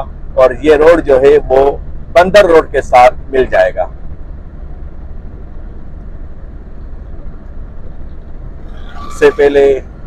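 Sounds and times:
road noise inside moving car: 0.0 - 10.0.

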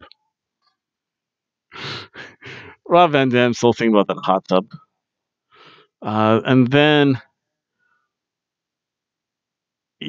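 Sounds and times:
man laughing softly: 1.8 - 4.6.

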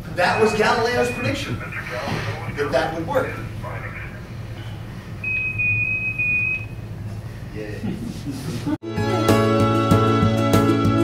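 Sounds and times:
constant low hum: 0.0 - 8.8
high-pitched electronic beep: 0.2 - 2.0.

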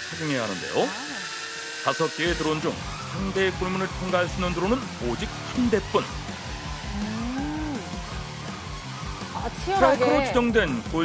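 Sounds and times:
drone motors whirring: 0.0 - 11.0
background music with steady beat: 2.7 - 11.0.

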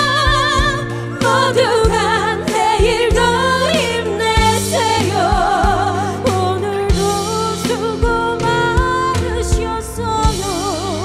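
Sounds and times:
backing track with bass and drums: 0.0 - 11.0
women singing with vibrato: 0.0 - 11.0.

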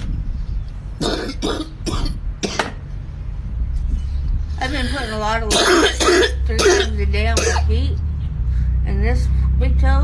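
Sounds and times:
person coughing: 1.0 - 2.7, 5.5 - 7.7.

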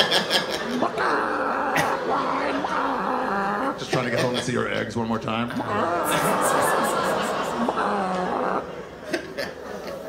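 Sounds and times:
man imitating a chicken: 0.6 - 3.9, 5.6 - 8.7.

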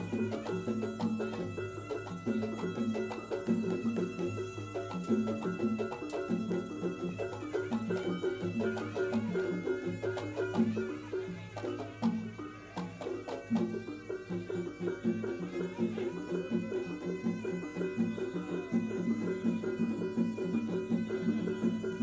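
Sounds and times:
percussion ensemble playing: 0.0 - 22.0.

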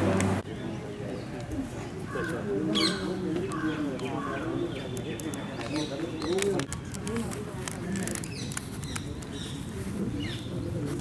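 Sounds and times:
birds chirping: 0.0 - 7.2, 7.8 - 11.0.

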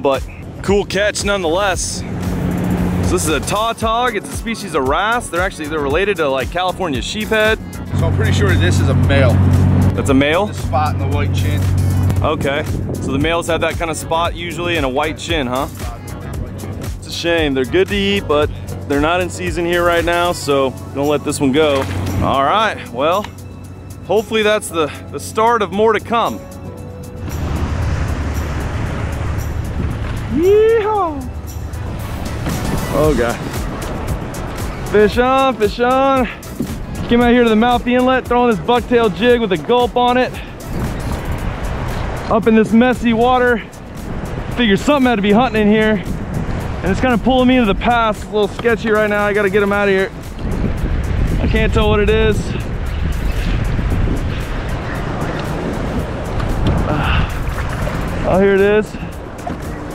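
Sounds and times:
faint background music with beat: 0.0 - 59.9
waves rushing around kayak: 0.0 - 59.9
wind noise on microphone: 7.0 - 20.7, 27.2 - 35.6, 36.2 - 39.4, 40.3 - 59.9
water sloshing against kayak: 27.2 - 30.4, 52.7 - 59.9.

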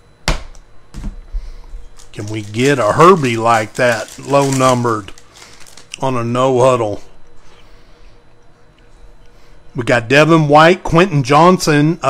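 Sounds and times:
foil packs rustling: 1.5 - 6.3.

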